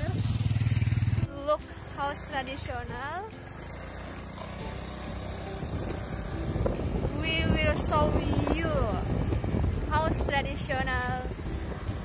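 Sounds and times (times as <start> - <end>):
motorcycle engine running: 0.0 - 12.0
wind rumbling on microphone: 5.5 - 12.0.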